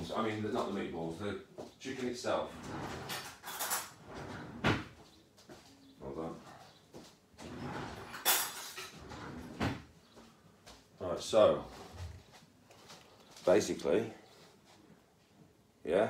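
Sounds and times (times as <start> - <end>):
shuffling handling noise: 10.2 - 15.4.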